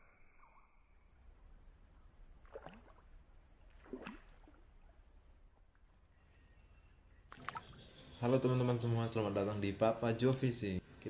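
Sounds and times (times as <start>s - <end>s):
high insect drone: 0.1s - 11.0s
water splashes: 2.2s - 5.9s, 7.3s - 10.6s.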